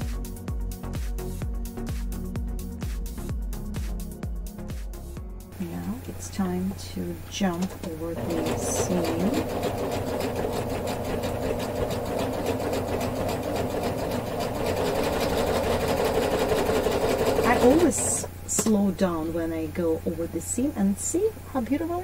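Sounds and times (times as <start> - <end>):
serger stitching: 7.3 - 18.3.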